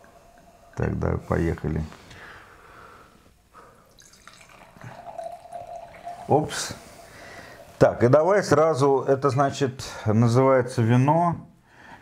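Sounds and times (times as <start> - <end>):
wine pouring into glass: 3.8 - 7.8.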